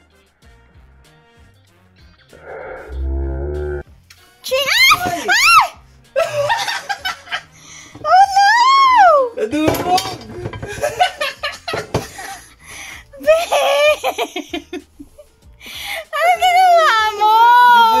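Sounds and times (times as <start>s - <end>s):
people laughing: 6.2s - 7.8s, 10.7s - 12.6s, 13.2s - 15.0s.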